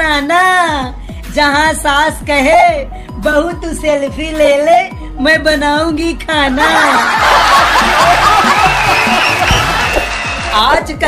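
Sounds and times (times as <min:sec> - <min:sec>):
background music: 0:00.0 - 0:11.0
audience laughing: 0:06.6 - 0:10.3.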